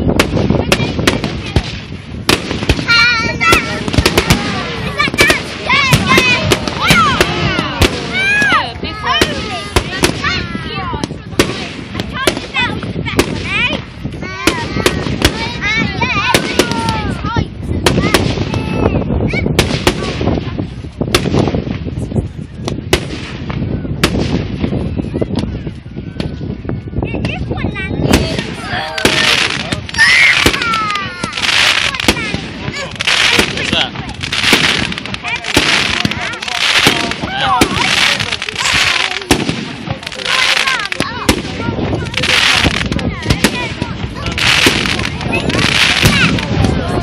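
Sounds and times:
fireworks bangs: 0.0 - 47.0
low rumble of fireworks: 0.0 - 47.0.

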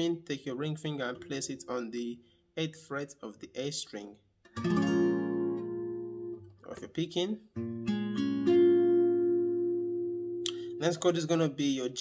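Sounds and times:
acoustic guitar chord strummed: 4.5 - 6.6, 7.6 - 11.1.

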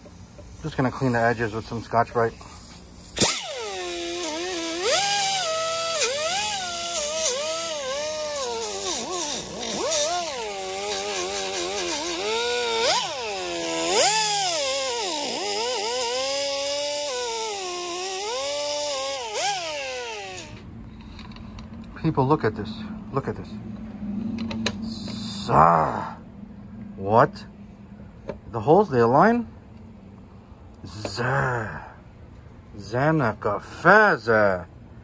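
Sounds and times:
die grinder whining: 3.1 - 20.6.

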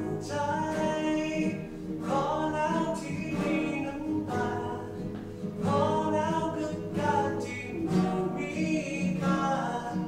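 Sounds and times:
nylon-string guitar: 0.0 - 10.0.

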